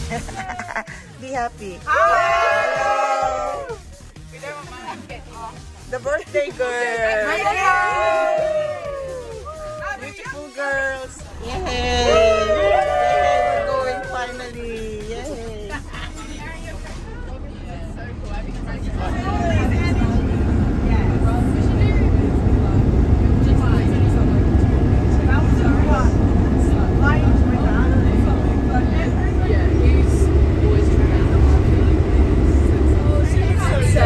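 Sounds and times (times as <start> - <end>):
bus rumble from inside: 0.0 - 34.0
passengers chattering: 0.0 - 34.0.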